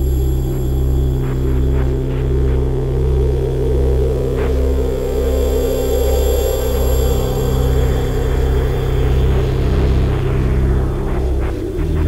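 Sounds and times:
deep synthesizer drone: 0.0s - 12.0s.

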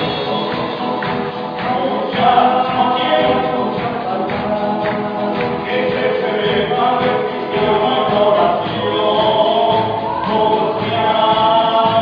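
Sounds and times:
group of voices singing: 0.0s - 12.0s
worship band playing: 0.0s - 12.0s.

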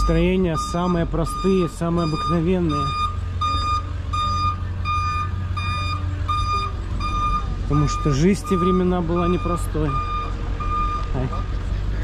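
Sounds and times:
electronic alarm beeping: 0.0s - 11.5s.

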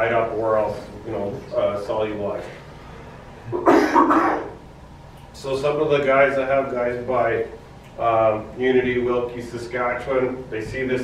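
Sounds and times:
man coughing: 3.5s - 4.6s.

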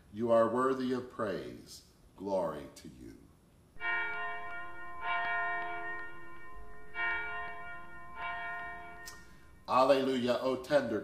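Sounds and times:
bell ringing: 3.8s - 10.0s.

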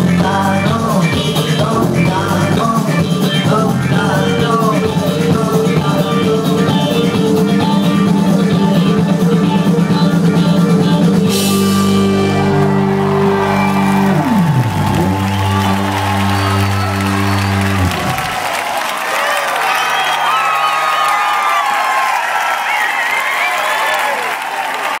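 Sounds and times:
rock band sustained chord: 0.0s - 18.6s
crowd cheering and applauding: 11.2s - 25.0s
crowd shouts and whistles: 11.7s - 25.0s.

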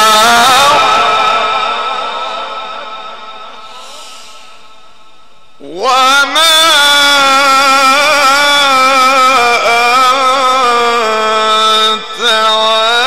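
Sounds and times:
man chanting into a microphone: 0.0s - 4.0s, 5.5s - 13.0s.

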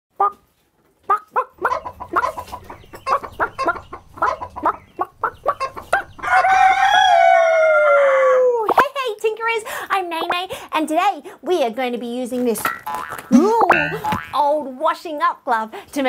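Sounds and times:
chickens clucking: 0.2s - 8.0s, 12.7s - 14.3s
rooster crowing: 6.2s - 8.6s.

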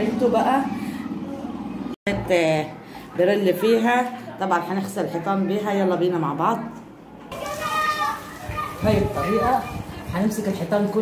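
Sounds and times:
children calling and playing: 0.0s - 11.0s.

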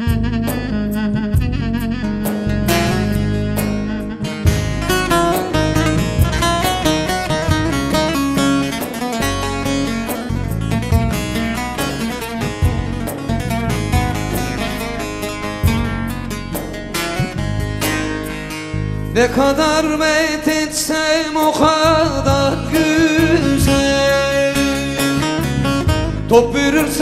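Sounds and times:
steady musical accompaniment: 0.0s - 27.0s
plucked string instrument run: 2.0s - 20.6s.

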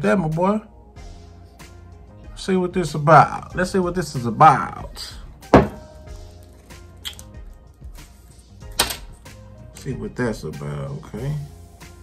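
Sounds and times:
quiet background music: 0.0s - 12.0s
bottle knocking: 5.5s - 6.0s.

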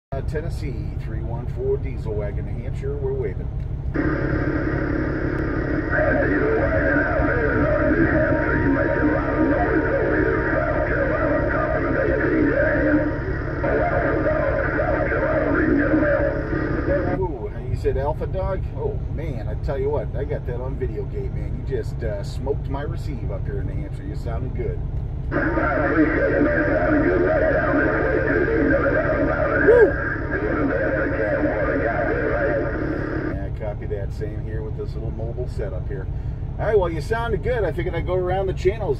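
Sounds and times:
steady low rumble: 0.1s - 38.9s
truck cab low drone: 0.1s - 38.9s
tinny guitar music over radio: 5.4s - 17.9s, 25.3s - 34.2s.

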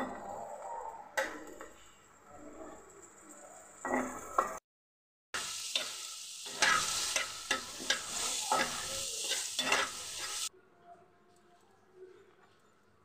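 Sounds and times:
vegetables sizzling in oil: 5.4s - 10.5s
spoon scraping pan: 5.7s - 10.5s.

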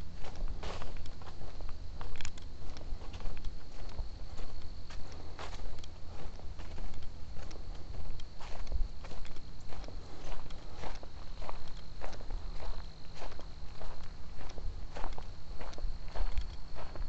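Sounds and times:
footsteps on dry leaves: 0.0s - 17.0s.

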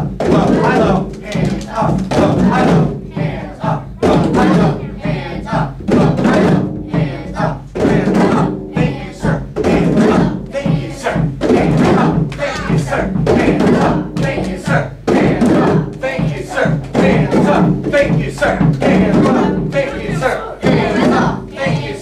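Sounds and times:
children playing hand drums: 0.0s - 22.0s
voices chanting: 0.0s - 22.0s.

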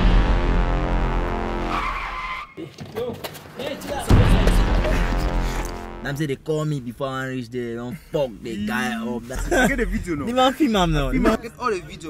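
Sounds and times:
car skidding: 1.6s - 5.4s
tyre squeal: 1.7s - 3.0s.

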